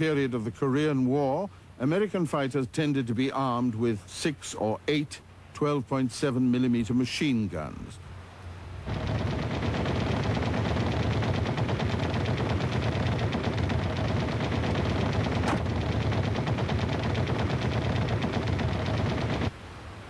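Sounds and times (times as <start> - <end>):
machine gun fire: 8.9 - 19.5
sharp crack: 8.9 - 19.5.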